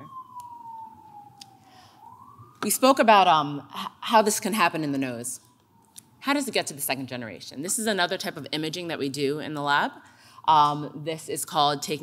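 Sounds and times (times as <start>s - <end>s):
faint siren wailing: 0.0s - 12.0s.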